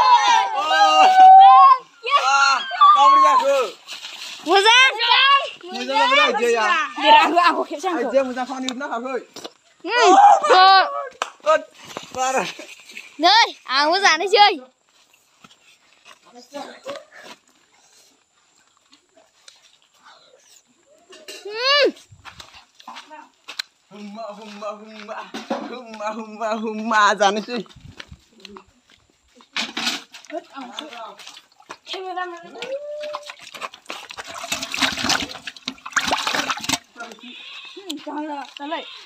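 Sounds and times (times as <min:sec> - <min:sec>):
water splashing in a metal basin: 0:31.0 - 0:37.2.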